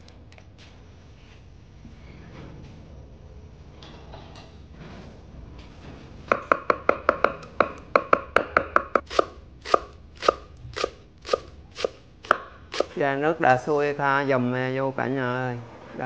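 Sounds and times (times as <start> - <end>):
knife chopping on wooden board: 12.3 - 12.9.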